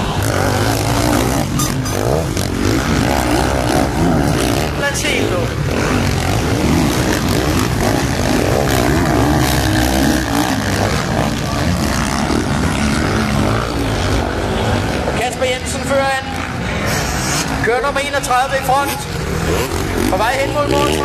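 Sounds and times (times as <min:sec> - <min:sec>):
motocross bike engines revving: 0:00.0 - 0:21.0
commentator speaking: 0:04.6 - 0:05.6, 0:15.1 - 0:16.5, 0:17.6 - 0:19.2, 0:20.0 - 0:21.0.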